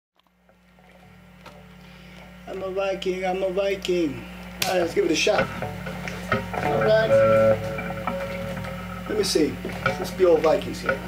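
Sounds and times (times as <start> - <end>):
guitar amplifier electrical hum: 0.2 - 11.0.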